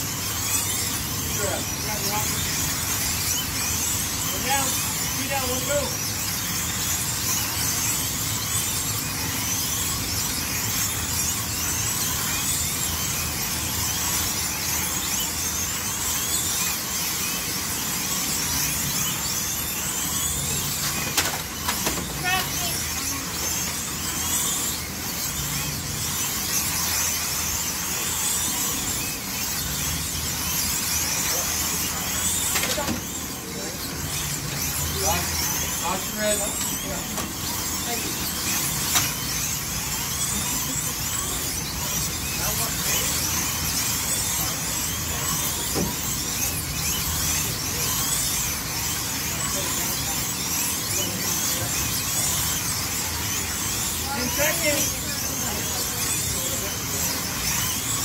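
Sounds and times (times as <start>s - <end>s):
slot car motors whining: 0.0s - 58.0s.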